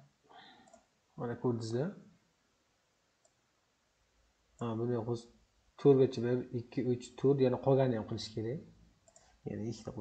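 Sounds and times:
computer mouse click: 0.6 - 0.9, 3.2 - 3.4, 9.0 - 9.4.

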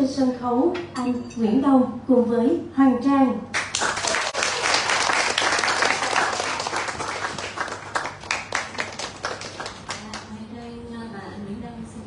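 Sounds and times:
audience applauding: 3.6 - 10.3.

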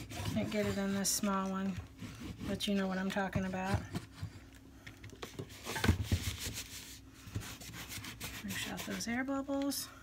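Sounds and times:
hands rubbing on canvas: 6.2 - 9.3.

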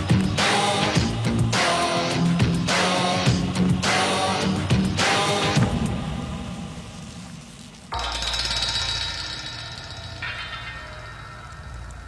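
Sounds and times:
metallic clang: 7.9 - 12.0.

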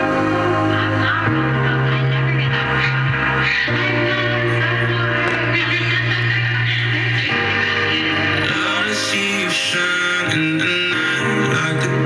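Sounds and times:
electronic pop music on radio: 0.0 - 12.0.

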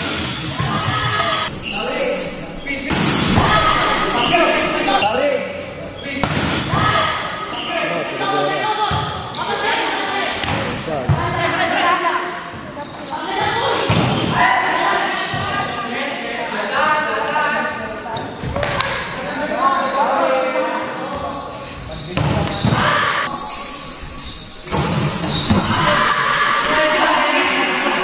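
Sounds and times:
people shouting and calling: 0.7 - 5.3, 22.9 - 28.0.

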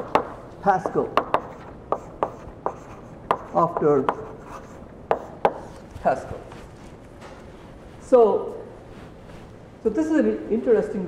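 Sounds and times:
chalk tapping on blackboard: 0.0 - 5.9
chalk scratching: 0.0 - 8.1.

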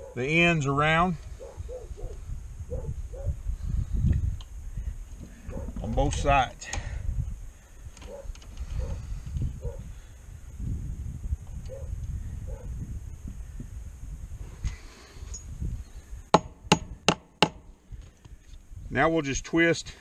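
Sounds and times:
wind rumble on microphone: 0.0 - 20.0
sharp knocks: 16.3 - 17.6.

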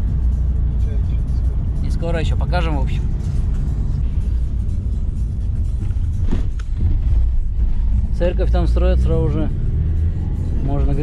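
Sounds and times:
minibus engine rumble: 0.0 - 11.0
tyres on rough unpaved road: 0.0 - 11.0.

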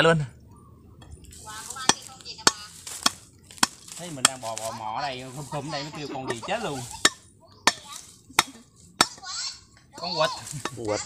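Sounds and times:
knife chopping into coconut: 1.8 - 4.7.

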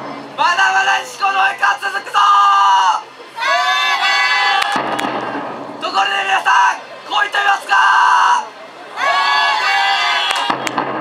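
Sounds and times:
crowd noise burst: 0.0 - 11.0
person shouting a long call: 6.0 - 10.2.

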